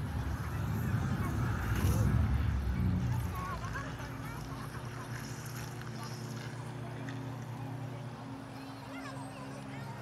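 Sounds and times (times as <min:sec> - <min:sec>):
faint voices murmuring: 0:00.0 - 0:10.0
steady low hum: 0:00.0 - 0:10.0.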